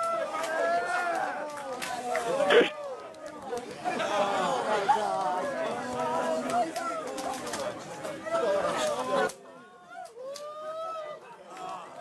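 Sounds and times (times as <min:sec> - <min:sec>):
crowd chattering excitedly: 0:00.0 - 0:12.0.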